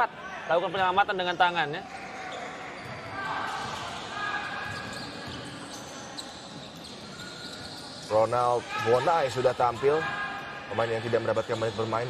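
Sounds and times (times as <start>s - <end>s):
crowd and arena noise: 0.0s - 12.0s
shoes squeaking on court: 1.8s - 8.3s.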